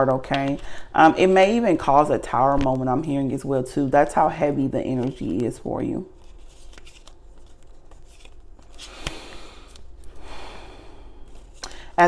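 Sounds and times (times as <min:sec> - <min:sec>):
cards rustling and sliding: 0:06.2 - 0:10.2, 0:11.2 - 0:11.6.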